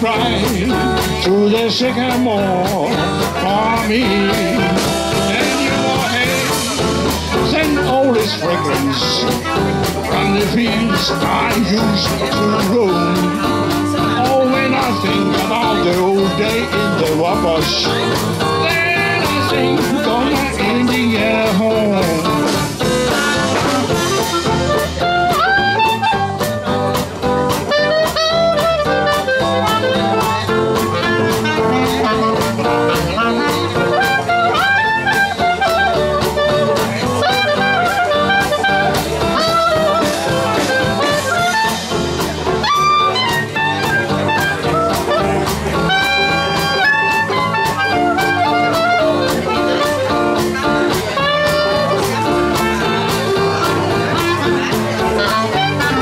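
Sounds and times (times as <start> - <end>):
traditional jazz band playing: 0.0 - 56.0.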